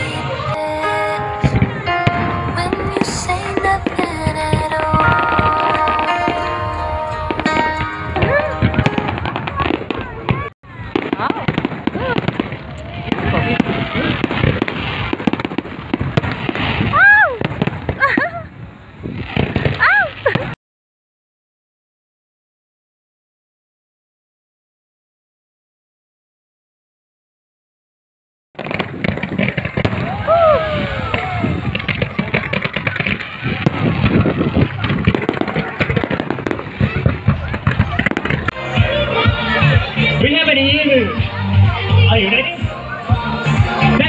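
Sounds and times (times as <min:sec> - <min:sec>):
crowd voices: 0:00.0 - 0:20.6, 0:28.6 - 0:44.0
fireworks bangs and crackles: 0:00.0 - 0:20.6, 0:28.6 - 0:44.0.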